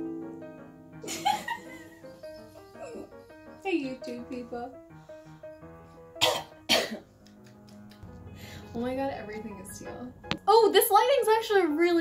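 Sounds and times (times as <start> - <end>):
soft music with held notes: 0.0 - 12.0
loud coughs: 6.2 - 7.1.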